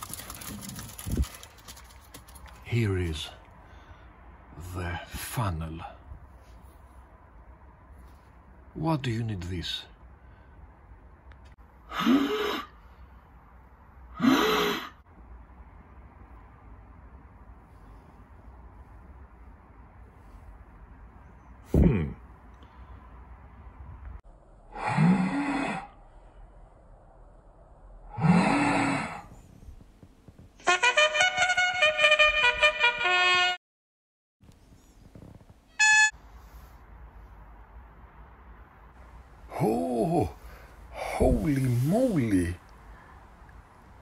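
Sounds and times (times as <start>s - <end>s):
plastic funnel blown like a horn: 30.6s - 33.6s, 35.8s - 36.2s
trumpet-like notes: 30.6s - 33.6s, 35.8s - 36.2s
short bright honk: 35.8s - 36.2s.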